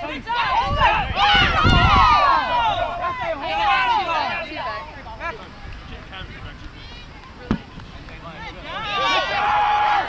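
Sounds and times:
women shouting: 0.0s - 4.4s, 8.7s - 10.0s.

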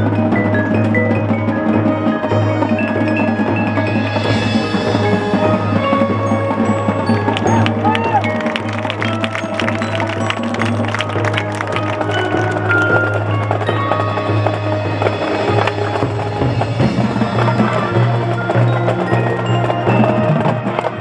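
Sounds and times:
marching band playing: 0.0s - 21.0s
sharp percussion hits: 0.0s - 21.0s.

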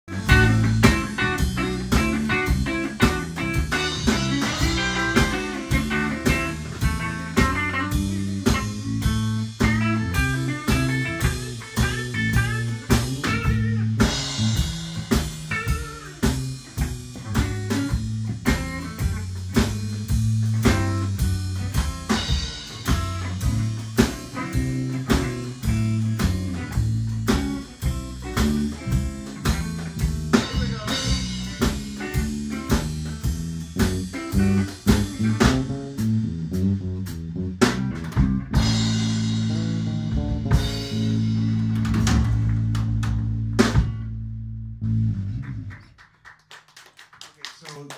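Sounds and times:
live band playing fast tune: 0.0s - 44.1s.

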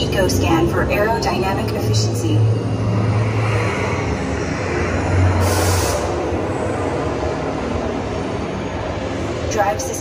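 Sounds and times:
ride vehicle rumbling on track: 0.0s - 10.0s.

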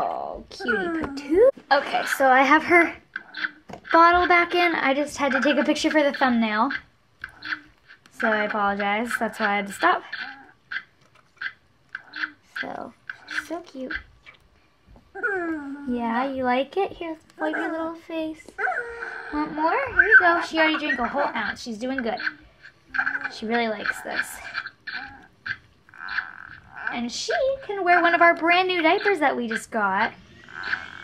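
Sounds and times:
feeding bottle squeaky gurgling: 1.7s - 14.4s, 18.6s - 31.0s.

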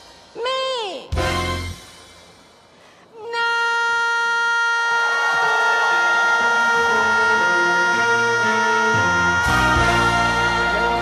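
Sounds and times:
backing music: 1.1s - 2.7s, 5.4s - 11.0s
woman singing long high note: 3.2s - 11.0s.

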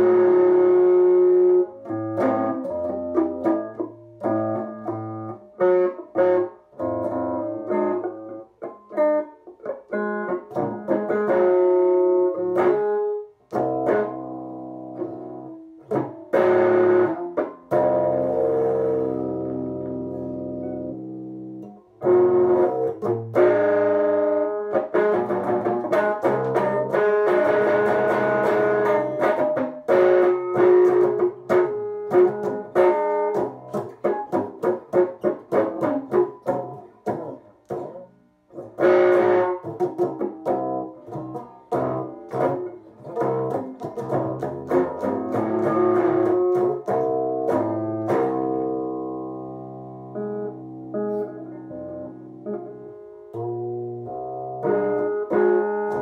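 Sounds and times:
electric guitar strumming chords: 0.0s - 56.0s.

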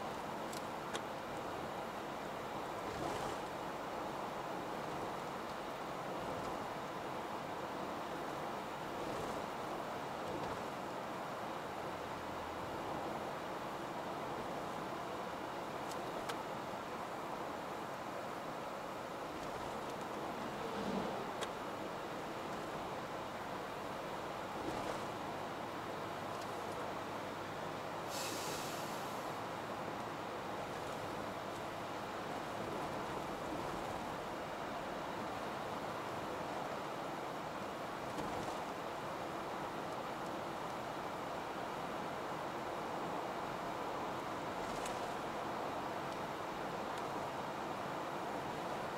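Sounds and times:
car road and engine noise: 0.0s - 48.9s.

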